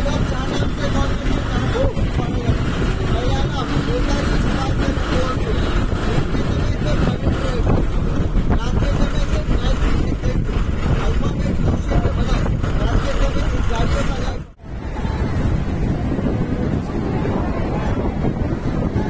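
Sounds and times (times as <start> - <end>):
bus road and engine noise: 0.0 - 19.0
faint voices: 0.0 - 19.0
wind buffeting microphone: 0.0 - 19.0.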